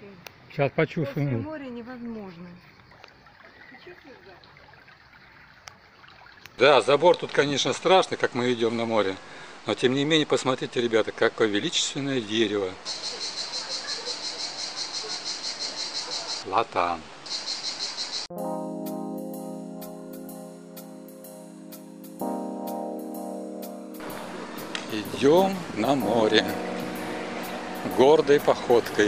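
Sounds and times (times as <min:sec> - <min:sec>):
insects chirring: 0:00.3 - 0:08.9, 0:12.8 - 0:16.5, 0:17.2 - 0:18.3
pool water trickling: 0:00.5 - 0:17.5, 0:18.5 - 0:29.0
faint distant voices: 0:12.9 - 0:16.5
background music sustained chords: 0:18.3 - 0:29.0.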